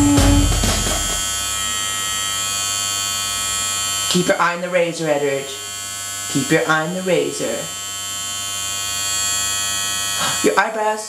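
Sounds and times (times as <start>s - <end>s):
drum-heavy music: 0.0s - 1.5s
electric hair clippers buzzing: 0.0s - 11.0s.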